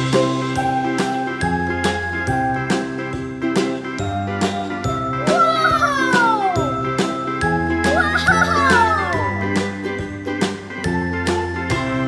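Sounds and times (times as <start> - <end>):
children's music with steady beat: 0.0 - 12.0.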